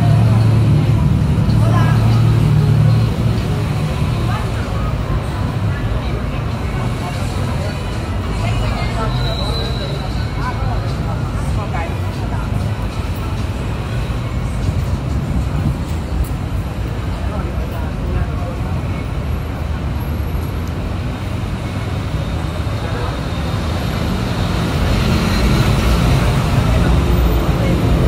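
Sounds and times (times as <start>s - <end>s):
city road traffic: 0.0s - 28.0s
voices of passersby: 0.0s - 28.0s.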